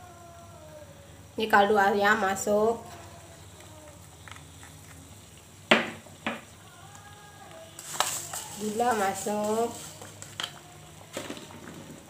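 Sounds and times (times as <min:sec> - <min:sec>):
sauce simmering: 0:01.5 - 0:12.0
sugar tapped into a wok: 0:05.7 - 0:06.5.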